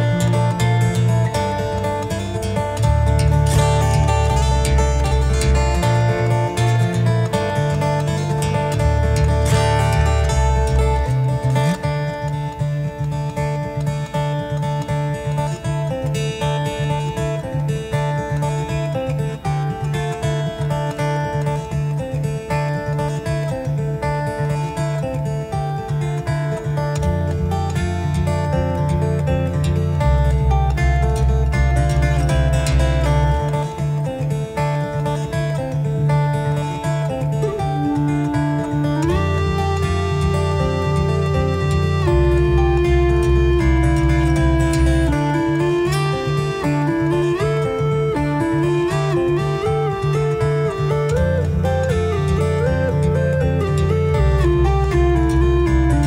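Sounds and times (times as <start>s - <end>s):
fingerstyle acoustic guitar: 0.0s - 56.0s
slaps and taps on guitar: 0.0s - 56.0s.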